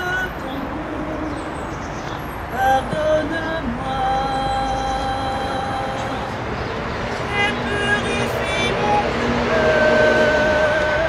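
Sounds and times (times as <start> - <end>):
woman singing: 0.0 - 1.7, 2.5 - 6.4, 7.3 - 11.0
road traffic noise: 0.0 - 11.0.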